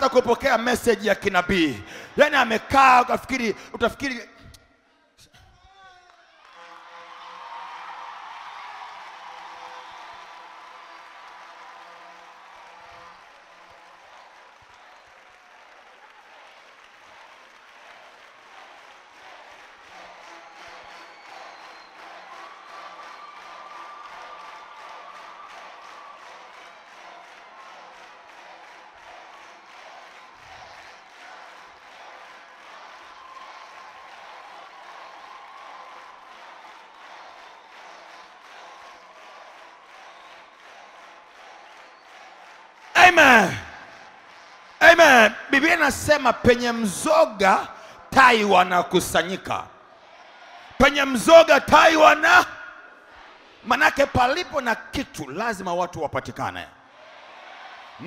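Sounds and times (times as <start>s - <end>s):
crowd applauding: 0.0s - 4.2s, 5.7s - 58.0s.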